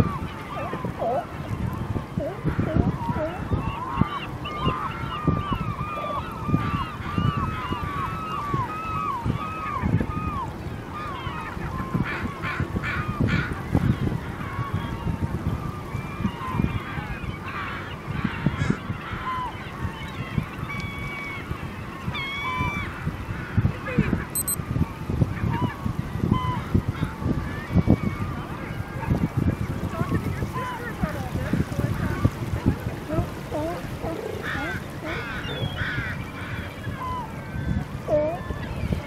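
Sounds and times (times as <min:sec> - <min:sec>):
gulls calling: 0:00.0 - 0:13.6, 0:29.9 - 0:39.0.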